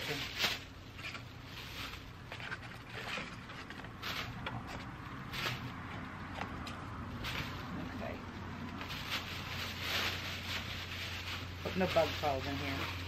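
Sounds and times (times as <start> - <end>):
plastic bag rustling and crinkling: 0.0 - 6.0, 7.1 - 13.0.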